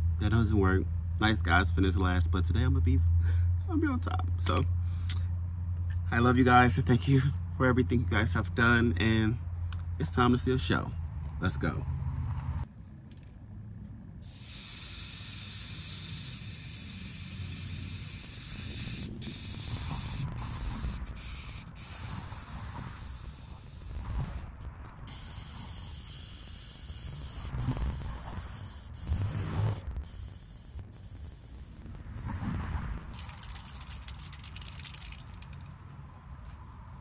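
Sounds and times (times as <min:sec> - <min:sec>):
air hissing out of tyre valve: 0:14.2 - 0:24.4, 0:25.0 - 0:33.7.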